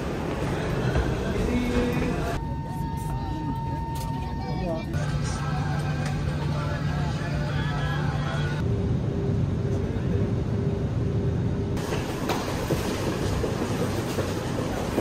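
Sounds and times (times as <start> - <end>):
airport terminal bustle: 0.0 - 15.0.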